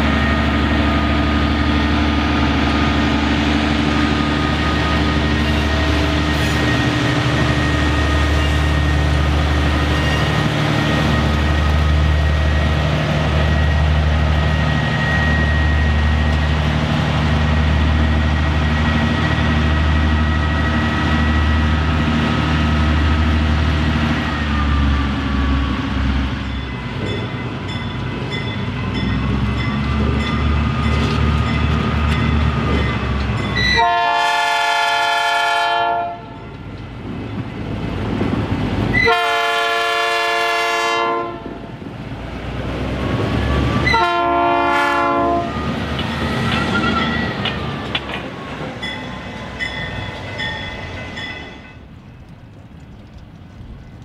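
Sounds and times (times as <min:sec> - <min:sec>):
train horn: 0:33.6 - 0:36.4, 0:38.9 - 0:41.6, 0:43.8 - 0:45.6.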